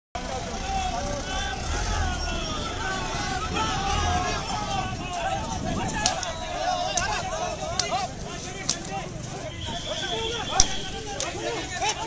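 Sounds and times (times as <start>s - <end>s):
raised voices calling out: 0.2s - 12.0s
steady low rumble: 0.4s - 8.6s.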